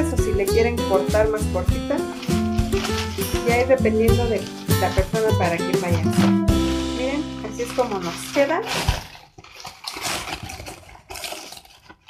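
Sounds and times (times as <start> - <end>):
crepe paper rustling and crinkling: 1.9 - 6.9, 7.6 - 12.0.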